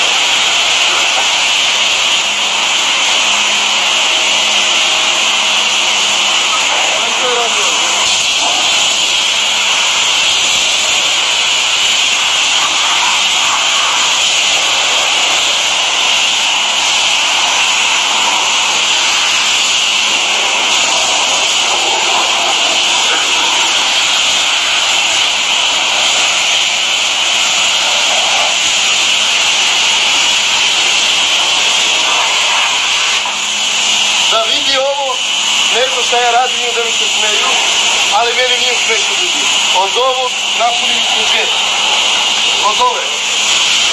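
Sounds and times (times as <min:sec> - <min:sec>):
pressure washer spraying water: 0:00.0 - 0:43.9.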